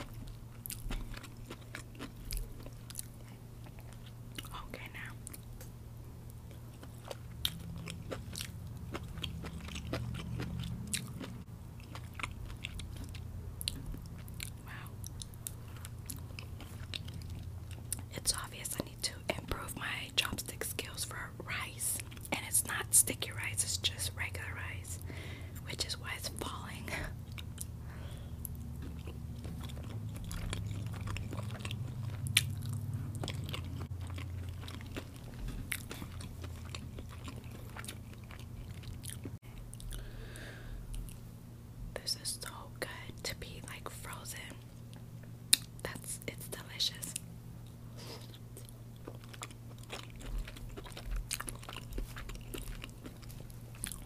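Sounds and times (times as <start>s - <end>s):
close-miked chewing: 0.0s - 41.3s, 42.4s - 54.0s
low steady hum: 0.0s - 54.0s.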